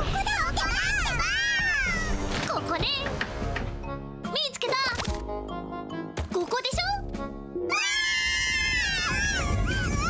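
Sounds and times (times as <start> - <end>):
background music: 0.0 - 10.0
cartoon baby voices screaming: 7.7 - 10.0.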